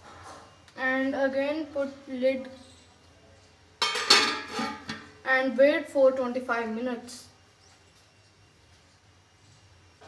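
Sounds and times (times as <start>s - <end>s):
metal lid clattering: 3.8s - 5.1s.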